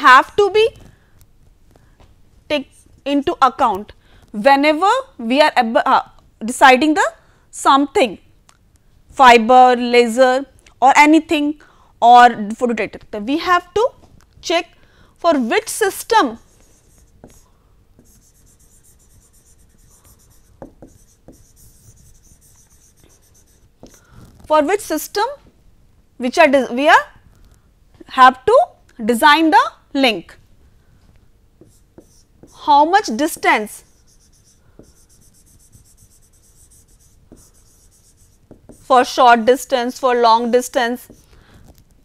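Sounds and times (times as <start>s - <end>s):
stylus scratching on tablet: 16.1s - 24.6s, 31.6s - 39.2s, 40.5s - 41.3s.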